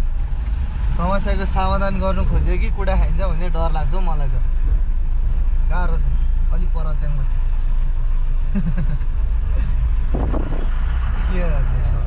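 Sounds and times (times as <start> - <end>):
vehicle engine and road rumble: 0.0 - 12.0.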